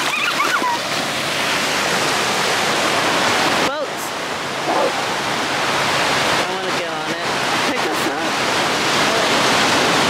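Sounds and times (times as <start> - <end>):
ocean surf rushing: 0.0 - 10.0.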